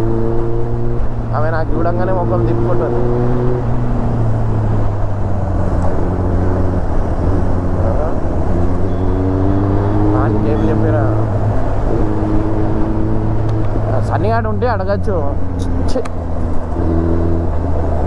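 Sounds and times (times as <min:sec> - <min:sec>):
motorcycle engine cruising: 0:00.0 - 0:18.0
rushing wind noise: 0:00.0 - 0:18.0.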